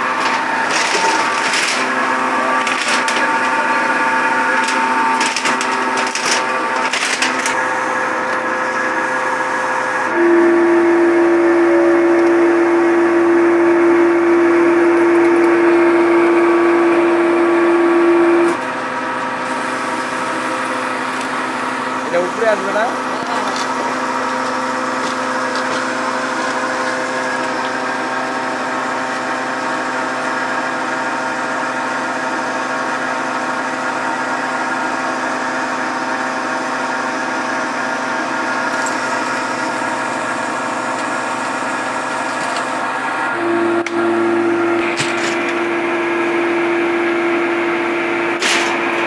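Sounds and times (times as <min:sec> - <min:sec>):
hydraulic press motor humming: 0:00.0 - 0:49.0.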